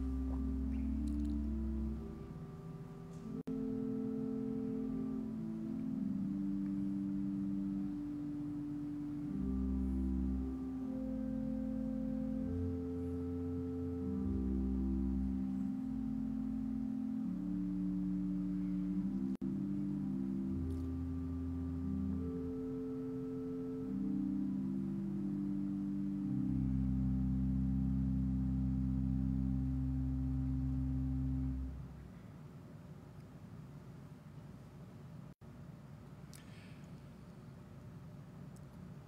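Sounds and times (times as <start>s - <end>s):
organ playing slow chords: 0.0s - 32.2s.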